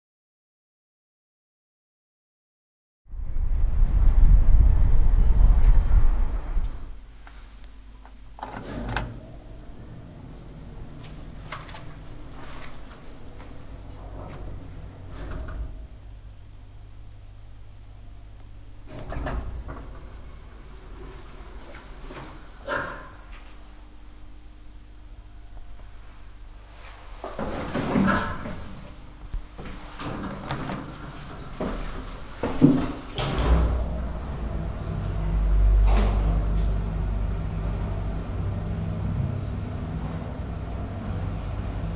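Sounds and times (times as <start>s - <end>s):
low steady hum: 3.1s - 41.9s
door mechanism rumbling and knocks: 8.4s - 9.3s, 18.9s - 23.2s, 30.0s - 38.2s
elevator doors sliding closed: 8.4s - 12.7s, 13.6s - 16.0s, 18.8s - 23.4s, 29.7s - 41.9s
faint clicks and clunks from lift: 11.0s - 15.9s, 18.4s - 23.6s, 27.2s - 37.0s.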